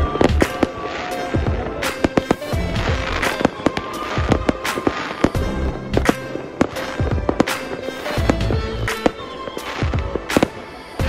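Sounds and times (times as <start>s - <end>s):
background music: 0.0s - 11.0s
fireworks bangs and crackles: 0.0s - 11.0s.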